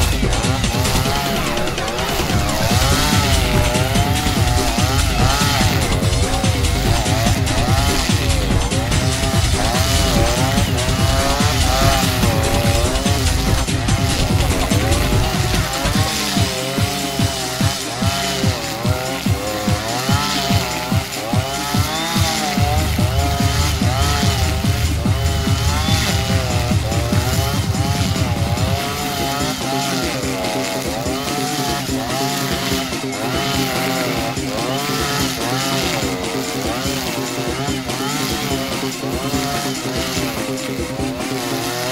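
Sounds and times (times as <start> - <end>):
brush cutter cutting grass: 0.0 - 41.9.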